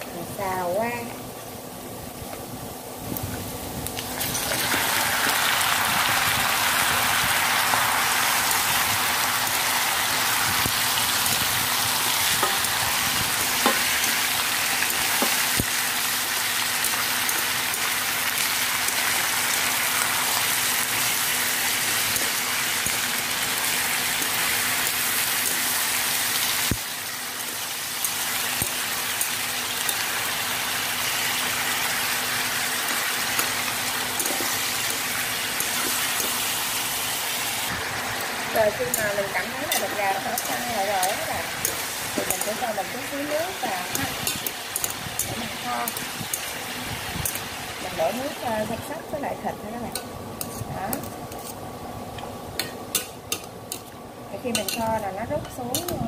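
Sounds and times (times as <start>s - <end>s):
chicken sizzling in hot oil: 0.4s - 56.0s
utensil clicking against pan: 39.7s - 42.6s, 43.9s - 46.5s, 47.2s - 47.5s, 54.5s - 56.0s.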